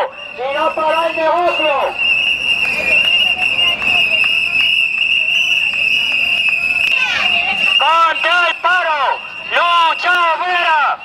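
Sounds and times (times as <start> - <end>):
person shouting a protest chant: 0.0 - 2.0, 6.9 - 11.0.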